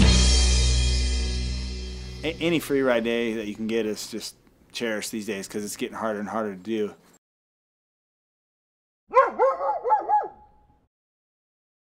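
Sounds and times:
yelping dog-like calls: 9.1s - 10.5s.

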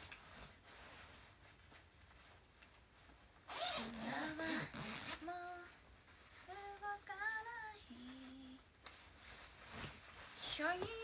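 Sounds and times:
woman singing without words: 4.0s - 5.8s, 6.4s - 8.7s, 10.4s - 11.0s.

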